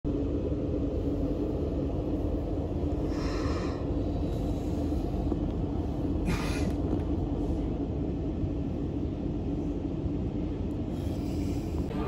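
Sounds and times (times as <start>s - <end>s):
constant hum tone: 0.0s - 12.0s
train carriage rumble: 0.1s - 12.0s.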